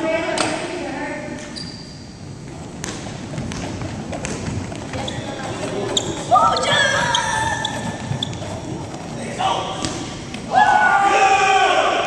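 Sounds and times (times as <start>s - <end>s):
players calling out in echoing gym: 0.0s - 12.0s.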